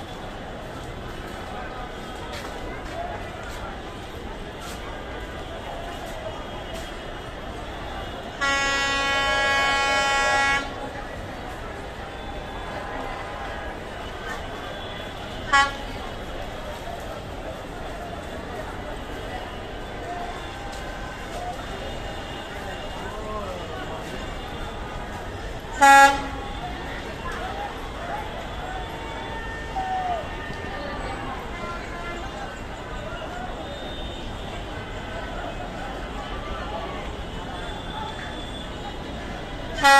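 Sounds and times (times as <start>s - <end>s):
locomotive horn blast: 6.7s - 11.0s, 14.6s - 16.3s, 23.6s - 27.0s, 38.3s - 39.9s.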